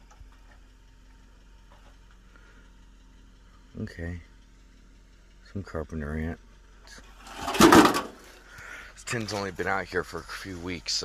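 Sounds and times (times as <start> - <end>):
tin sheet scraping rattle: 7.2 - 8.3.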